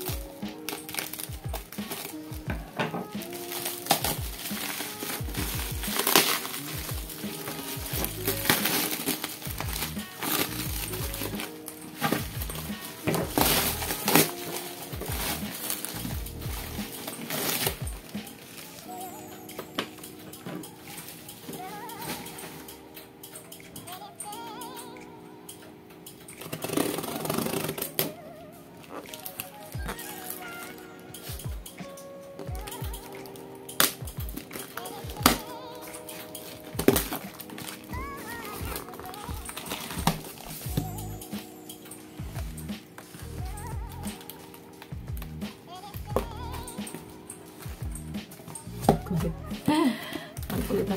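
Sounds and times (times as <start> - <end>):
scissors cutting tape and cardboard: 0.0 - 18.9, 26.2 - 28.2, 32.7 - 41.8
plastic bag crinkling: 0.0 - 22.6, 32.7 - 50.9
background music: 0.0 - 50.9.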